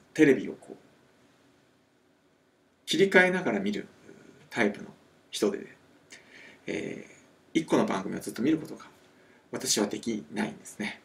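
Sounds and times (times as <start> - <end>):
man speaking: 0.0 - 0.9, 2.9 - 5.8, 6.6 - 11.0.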